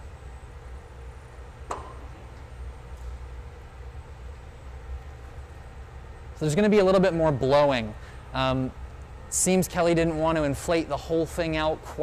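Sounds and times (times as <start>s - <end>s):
low roar of gas furnace: 0.0s - 12.0s.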